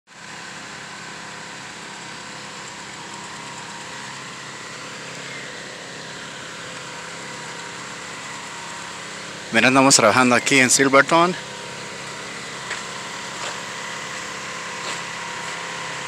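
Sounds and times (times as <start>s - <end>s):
machine humming: 0.2s - 16.0s.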